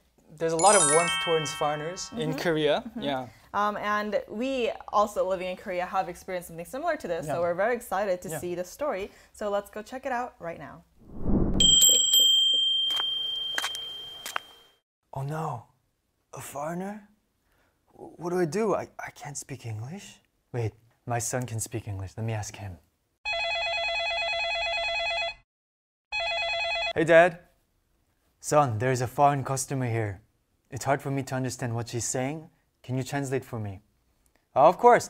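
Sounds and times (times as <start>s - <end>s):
bright bell ringing: 0.6s - 2.7s, 11.6s - 14.8s
low whooshing swell: 11.0s - 11.7s.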